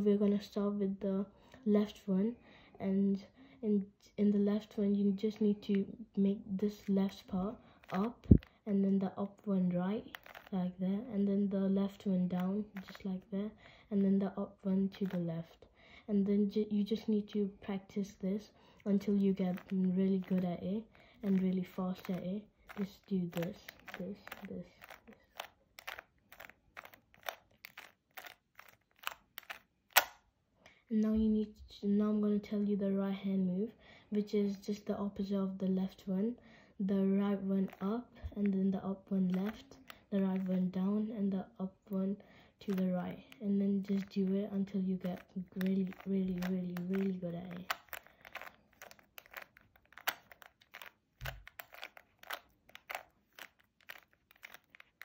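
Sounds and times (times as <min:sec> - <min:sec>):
puzzle cube clicking and rasping: 0:04.6 - 0:15.6, 0:16.5 - 0:30.2, 0:37.1 - 0:41.3, 0:41.9 - 0:55.0
sharp plastic clack: 0:22.0 - 0:30.2.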